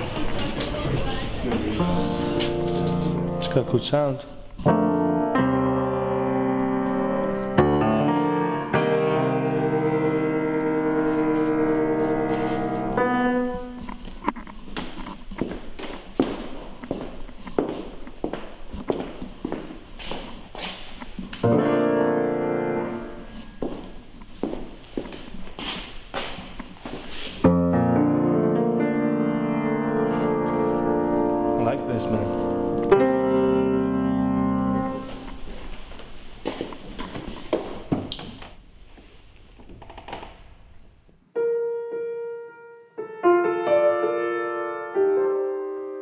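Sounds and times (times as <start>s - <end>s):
grand piano chords ringing: 0.0s - 14.0s, 21.4s - 24.1s, 27.4s - 35.3s, 41.3s - 46.0s.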